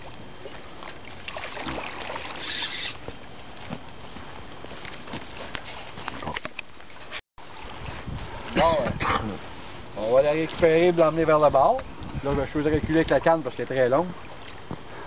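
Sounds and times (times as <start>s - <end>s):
water sloshing and splashing: 0.0s - 15.0s
fish splashing: 0.3s - 3.0s.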